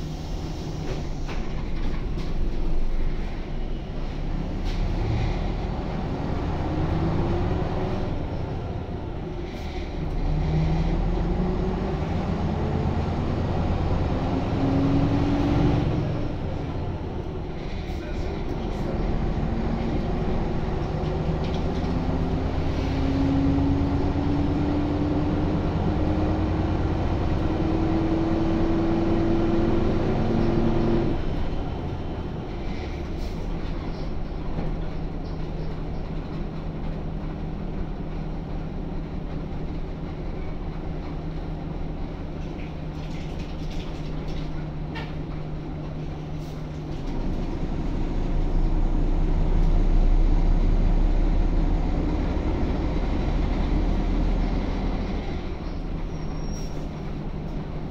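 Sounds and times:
bus diesel engine accelerating: 0:00.0 - 0:57.9.

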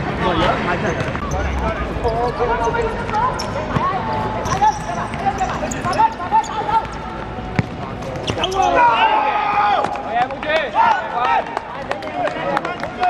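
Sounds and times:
ball kicked on hard court: 0:07.5 - 0:08.4
players shouting: 0:08.3 - 0:11.8.

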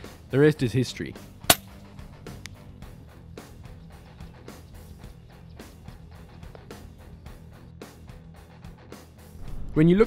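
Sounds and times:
air rifle shot: 0:01.5 - 0:01.7.

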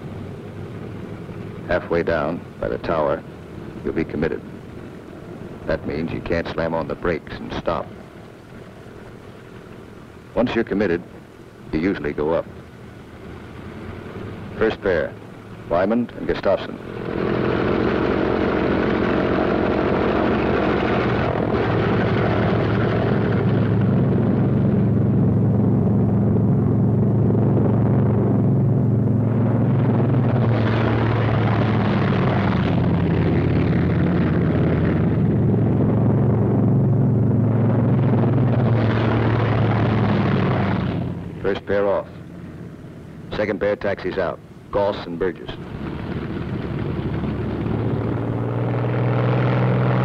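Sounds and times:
propeller plane engines droning: 0:00.0 - 0:50.0.

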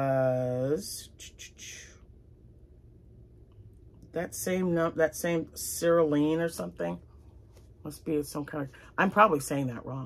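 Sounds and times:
faint low hum: 0:00.0 - 0:10.0
soft breaths or handling: 0:07.0 - 0:07.8.

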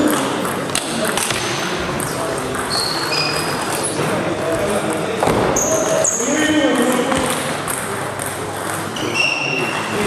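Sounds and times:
short high squeaks: 0:02.7 - 0:03.6.

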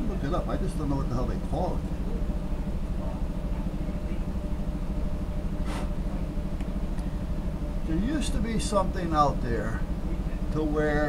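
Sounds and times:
machine humming: 0:00.0 - 0:11.0.

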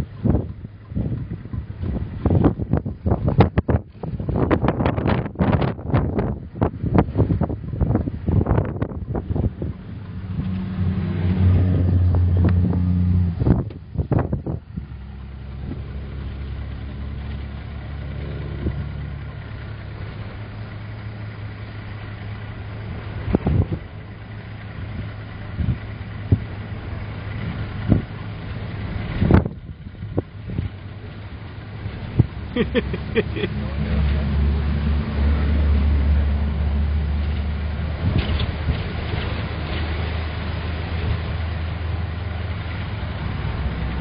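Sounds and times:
car engine from inside cabin: 0:00.0 - 0:44.0
wind buffeting car: 0:00.0 - 0:44.0.

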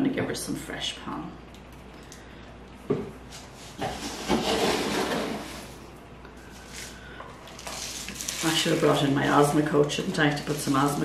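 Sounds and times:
granules pouring into plastic pot: 0:06.7 - 0:11.0.

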